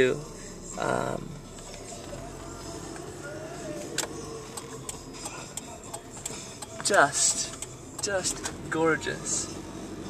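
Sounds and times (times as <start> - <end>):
car road and engine noise: 0.0 - 10.0.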